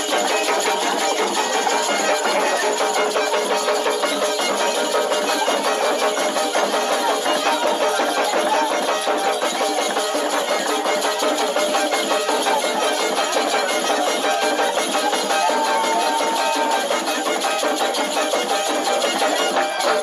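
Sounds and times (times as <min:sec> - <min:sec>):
fast driving percussion: 0:00.0 - 0:20.0.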